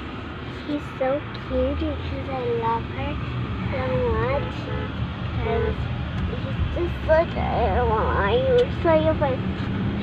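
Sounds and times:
car engine and road rumble: 0.0 - 10.0
child's voice: 0.7 - 9.4.

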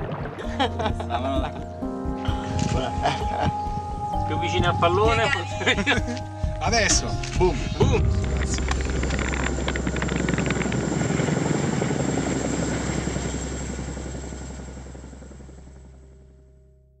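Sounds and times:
helicopter rotor drone: 7.8 - 16.4.

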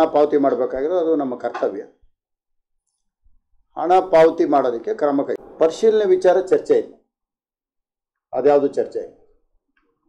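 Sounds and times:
man speaking: 3.8 - 7.0, 8.3 - 9.2.

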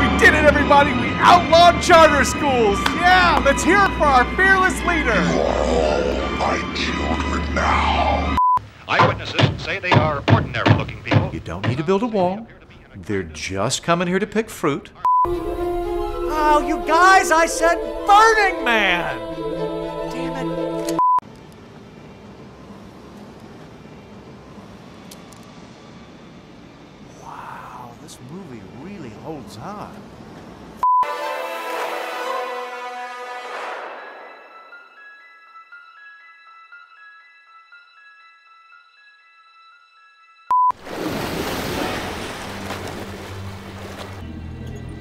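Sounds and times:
city traffic rumble: 8.6 - 15.0, 17.0 - 30.9
quiet keyboard music: 15.3 - 21.7
loud test beep: 40.5 - 40.8.

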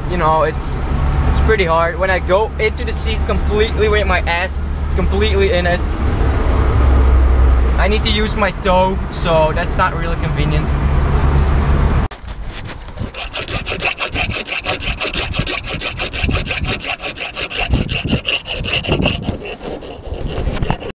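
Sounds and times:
car engine and road noise: 0.0 - 19.4
hand tool scraping steel: 12.2 - 20.9.

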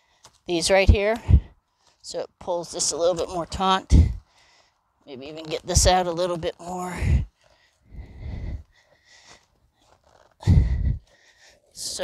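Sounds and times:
wind buffeting microphone: 10.5 - 11.0.

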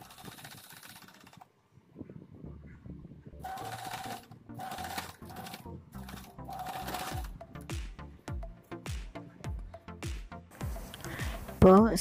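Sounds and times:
sewing machine stitching: 0.0 - 1.5, 3.4 - 7.3.

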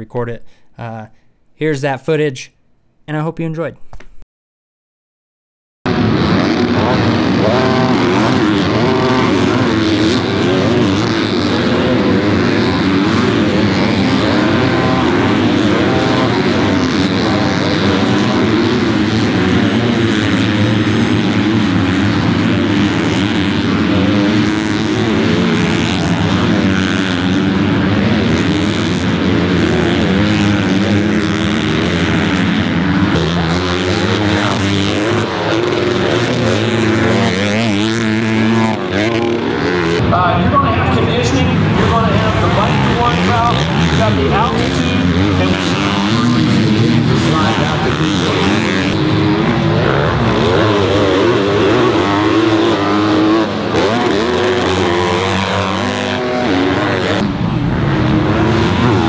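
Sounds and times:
motocross bike engines revving: 5.9 - 59.0.

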